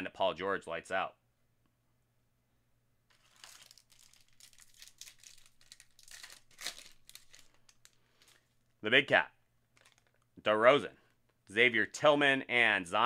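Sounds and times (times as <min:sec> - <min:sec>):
cards being handled: 0:03.1 - 0:08.6, 0:09.7 - 0:10.2
wrapper crinkling and tearing: 0:03.1 - 0:08.6, 0:09.7 - 0:10.2.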